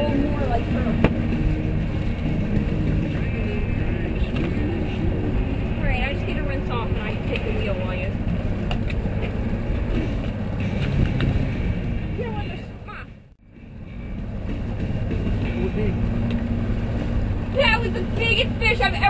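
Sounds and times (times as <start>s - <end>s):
outboard motors droning: 0.0s - 19.0s
wind: 0.0s - 19.0s.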